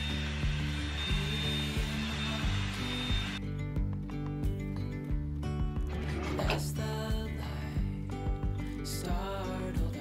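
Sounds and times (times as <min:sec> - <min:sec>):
hot-air brush running: 0:00.0 - 0:03.4
background music with beat: 0:00.0 - 0:10.0.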